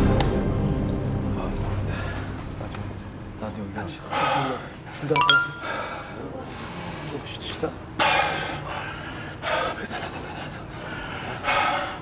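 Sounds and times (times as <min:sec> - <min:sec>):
bright rising chime: 0:05.2 - 0:05.8.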